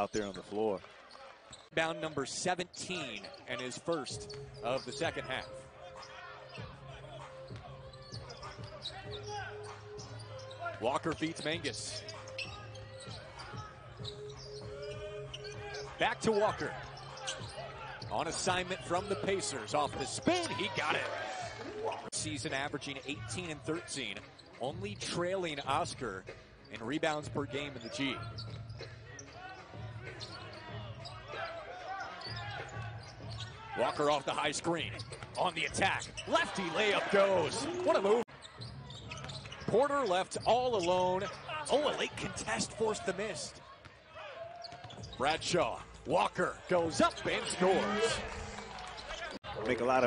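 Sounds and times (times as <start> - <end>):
sparse arena background: 0.0 - 50.0.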